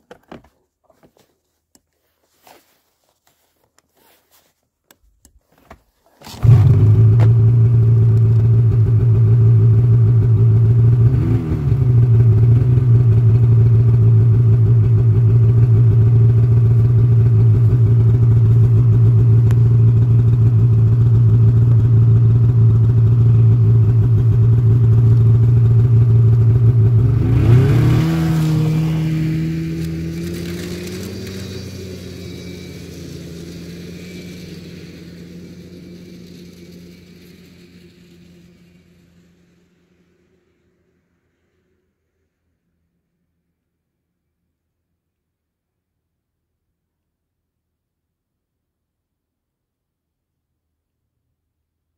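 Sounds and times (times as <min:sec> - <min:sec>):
snowmobile engine idling and revving: 0:01.0 - 0:42.6.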